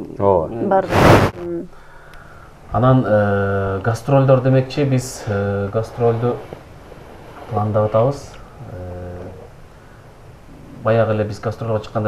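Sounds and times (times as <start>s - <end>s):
breathy hiss: 0.7s - 3.7s, 4.7s - 10.9s
man speaking: 2.8s - 6.5s, 7.5s - 9.4s.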